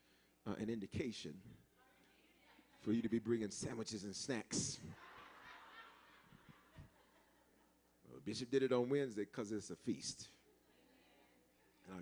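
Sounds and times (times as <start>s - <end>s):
faint audience laughter: 4.9s - 7.8s.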